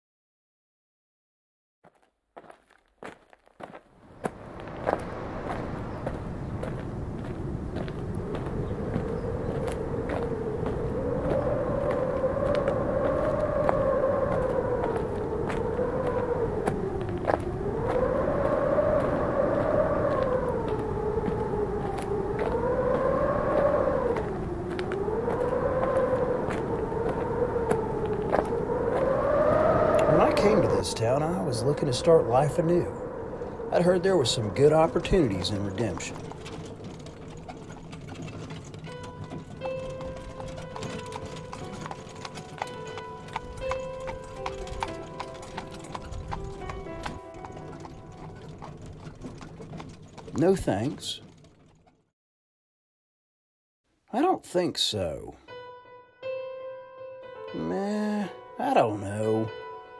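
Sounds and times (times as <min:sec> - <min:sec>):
horse hooves clip-clopping: 0:01.9 - 0:17.5, 0:34.2 - 0:52.0
howling wind: 0:03.0 - 0:52.0, 0:57.4 - 0:59.8
melodic background music: 0:38.8 - 0:49.1, 0:55.4 - 0:59.9.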